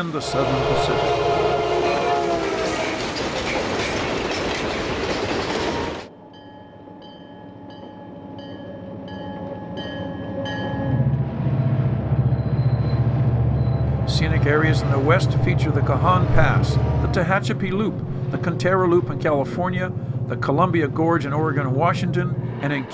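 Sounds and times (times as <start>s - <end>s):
diesel freight train passing: 0.0s - 6.1s, 9.0s - 22.9s
locomotive bell ringing: 0.0s - 22.9s
low rumble of diesel engines: 10.9s - 22.5s.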